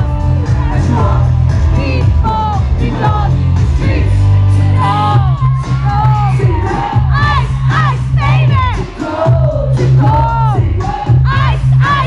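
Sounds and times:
fans screaming and shouting: 0.0s - 12.0s
live pop music with heavy bass: 0.0s - 12.0s.

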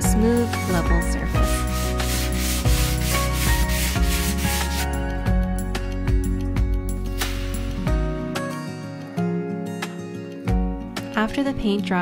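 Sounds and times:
sanding sponge strokes: 1.3s - 5.0s.

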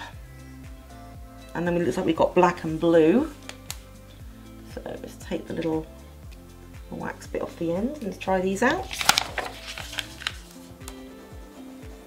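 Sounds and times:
soft background music: 0.0s - 12.0s.

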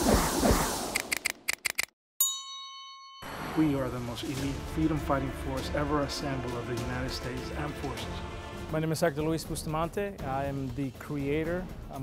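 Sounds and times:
quick sharp clicks: 0.9s - 2.0s
bright bell-like ding: 2.2s - 3.6s.

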